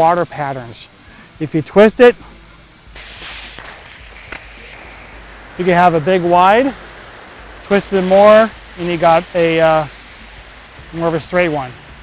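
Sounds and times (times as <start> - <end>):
water hissing from hose nozzle: 2.9 - 12.0.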